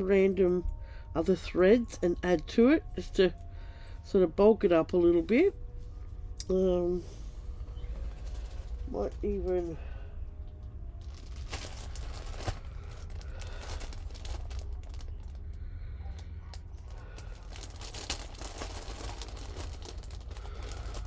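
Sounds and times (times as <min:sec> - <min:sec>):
plastic bag crinkling: 0:07.5 - 0:09.8, 0:11.0 - 0:15.6, 0:16.2 - 0:21.0.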